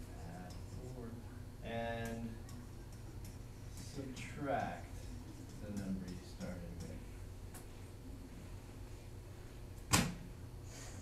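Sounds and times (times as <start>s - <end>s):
classroom hum: 0.0s - 7.2s.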